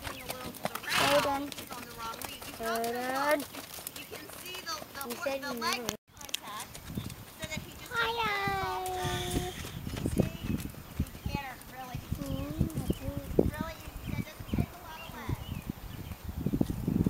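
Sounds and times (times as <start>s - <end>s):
people talking: 0.0s - 3.4s, 4.0s - 6.7s, 7.4s - 10.6s, 11.2s - 15.5s
horse hoofbeats on dusty ground: 0.0s - 17.0s.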